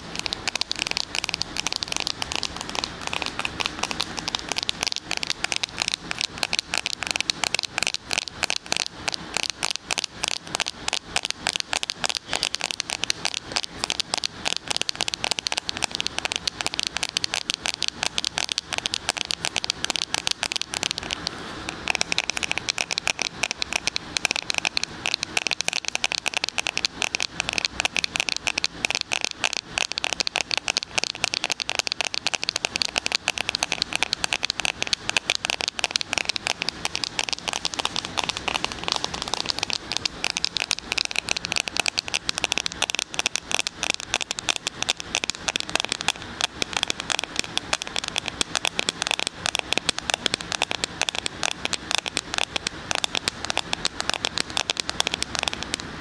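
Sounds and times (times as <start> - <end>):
fingers tapping on a smartphone: 0.0 - 56.0.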